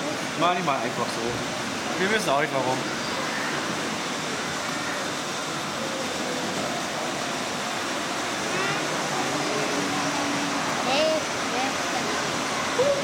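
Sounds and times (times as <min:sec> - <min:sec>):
hall background noise: 0:00.0 - 0:13.0.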